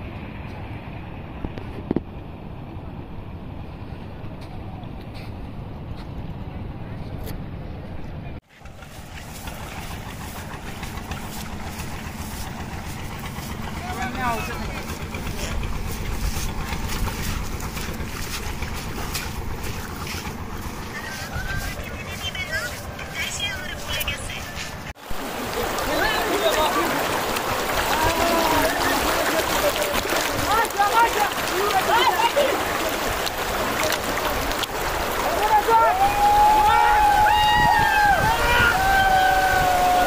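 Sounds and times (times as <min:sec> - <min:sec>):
river water rushing over stones: 0:08.6 - 0:40.0
wind buffeting microphone: 0:08.7 - 0:35.4, 0:36.0 - 0:40.0.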